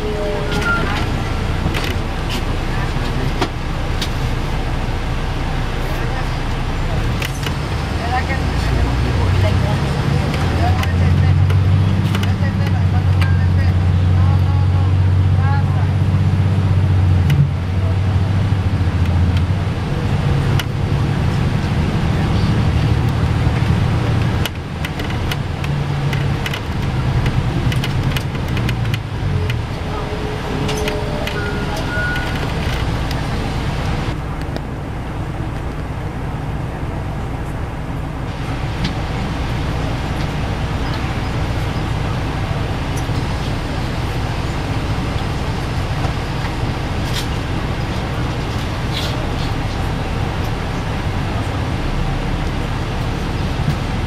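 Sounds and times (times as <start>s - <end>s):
bus diesel engine drone: 0.0s - 54.0s
road noise: 0.0s - 54.0s.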